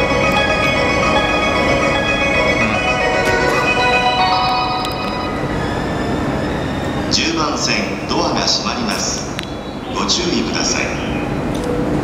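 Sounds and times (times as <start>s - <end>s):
chime-like departure melody: 0.0s - 7.2s
train platform background noise: 0.0s - 12.0s.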